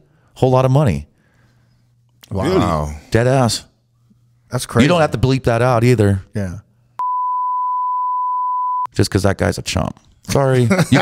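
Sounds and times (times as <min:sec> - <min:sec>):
censor bleep: 0:07.0 - 0:08.9.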